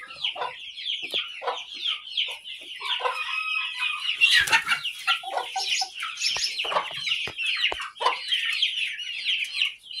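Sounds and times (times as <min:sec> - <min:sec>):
chickens and chicks peeping and clucking: 0:00.0 - 0:10.0.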